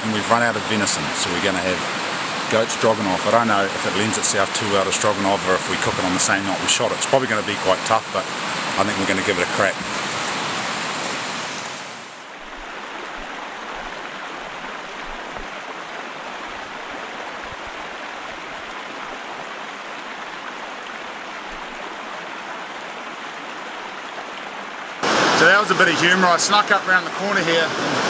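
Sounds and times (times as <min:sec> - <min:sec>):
river rushing over rapids: 0:00.0 - 0:28.0.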